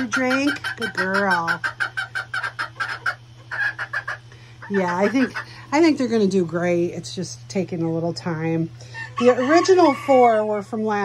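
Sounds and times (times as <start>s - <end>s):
young chickens clucking: 0.0s - 5.8s, 8.9s - 10.5s
fan humming: 0.0s - 11.0s.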